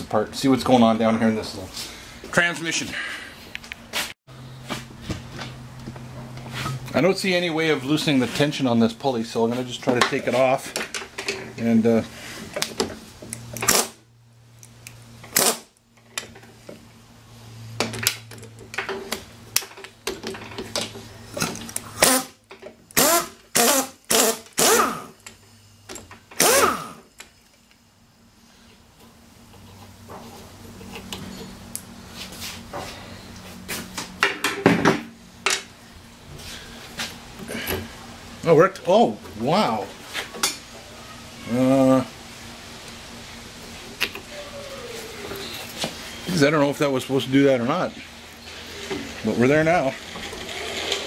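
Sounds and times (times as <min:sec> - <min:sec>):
pneumatic impact wrench hammering: 0:13.6 - 0:14.0, 0:15.3 - 0:15.7, 0:22.0 - 0:25.2, 0:26.3 - 0:27.1.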